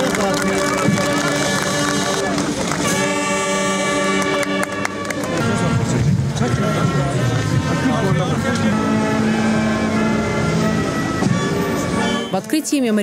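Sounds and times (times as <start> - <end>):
brass band playing slow chords: 0.0 - 12.6
large crowd noise: 0.0 - 13.0.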